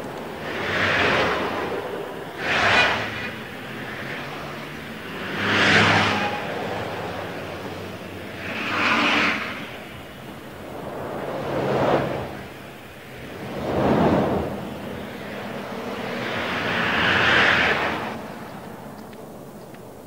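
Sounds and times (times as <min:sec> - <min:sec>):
cars passing by: 0:00.0 - 0:20.0.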